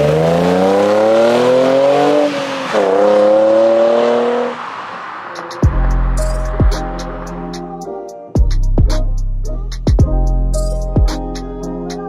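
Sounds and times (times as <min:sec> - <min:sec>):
car engine accelerating hard: 0:00.0 - 0:07.5
music with deep bass hit: 0:05.6 - 0:07.8, 0:08.4 - 0:11.6.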